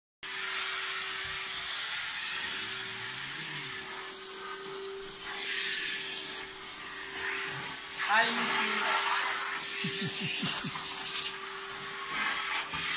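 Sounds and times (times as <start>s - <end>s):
carpet extractor vacuum motor: 0.2s - 12.9s.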